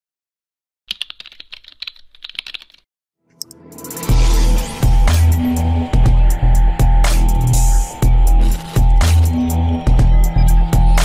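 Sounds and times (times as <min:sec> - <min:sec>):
rapid keyboard typing: 0:00.9 - 0:02.9.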